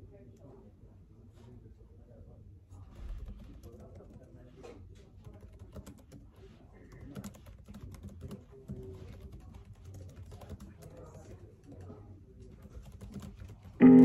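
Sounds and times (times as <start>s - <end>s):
typing on keyboard: 3.2s - 14.0s.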